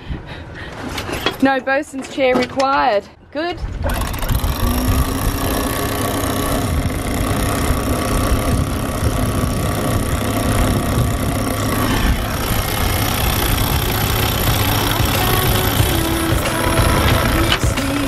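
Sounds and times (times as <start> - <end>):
wind buffeting microphone: 3.4 - 17.8
boat engine running: 3.7 - 18.0.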